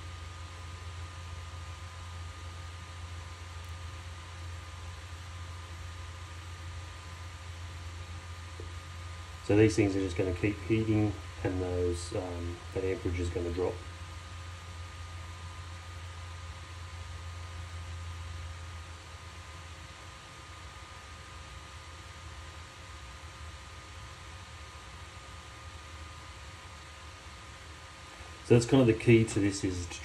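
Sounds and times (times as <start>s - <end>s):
small fan humming and hissing: 0.0s - 30.0s.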